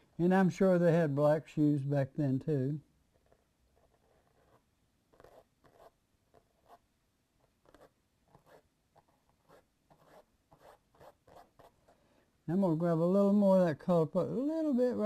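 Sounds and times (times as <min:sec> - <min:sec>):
paintbrush scratchy strokes: 0:03.1 - 0:06.8, 0:07.6 - 0:11.8.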